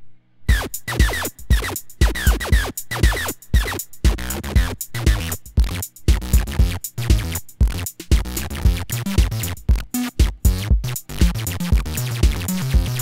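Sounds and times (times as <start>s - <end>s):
acid synth bass line: 0.5s - 13.0s.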